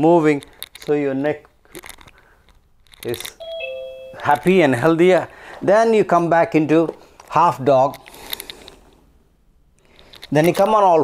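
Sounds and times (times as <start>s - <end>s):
two-note chime: 3.4s - 4.6s.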